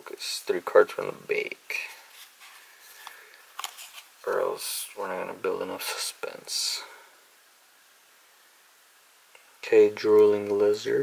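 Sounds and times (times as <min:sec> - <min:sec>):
paper cards sliding: 0:01.9 - 0:04.5.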